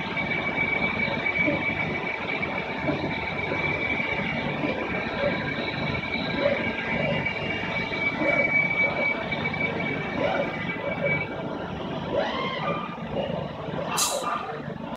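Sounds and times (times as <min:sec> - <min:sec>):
machine high whine: 0:00.0 - 0:14.9
machine shop noise: 0:00.0 - 0:14.9.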